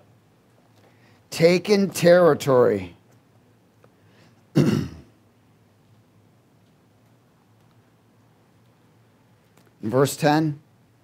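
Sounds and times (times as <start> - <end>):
man clearing his throat: 4.5 - 5.2.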